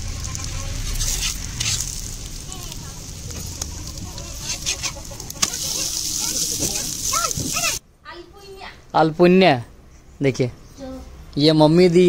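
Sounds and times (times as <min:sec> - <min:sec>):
batter sizzling in pan: 0:00.0 - 0:07.8.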